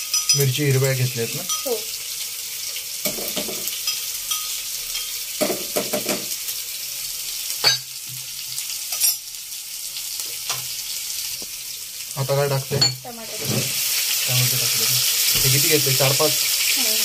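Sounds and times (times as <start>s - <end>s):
food sizzling in hot oil: 0.0s - 17.0s
utensil knocking against pan: 5.4s - 6.3s.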